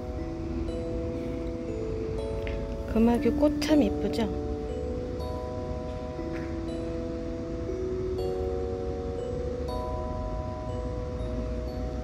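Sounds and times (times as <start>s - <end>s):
chime-like background music: 0.0s - 12.0s.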